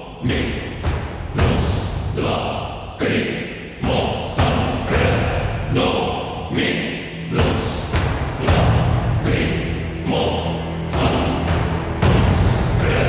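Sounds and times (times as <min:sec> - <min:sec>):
deep heavy thuds: 0:00.2 - 0:02.9, 0:07.2 - 0:13.0.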